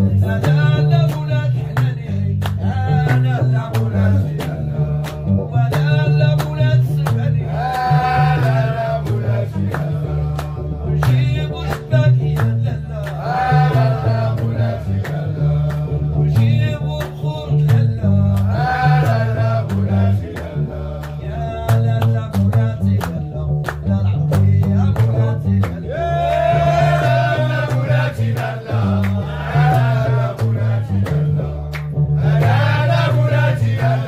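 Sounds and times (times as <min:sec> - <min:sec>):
man singing: 0:00.0 - 0:31.7
bass lute plucking riff: 0:00.0 - 0:34.0
rhythmic hand claps: 0:00.0 - 0:34.0.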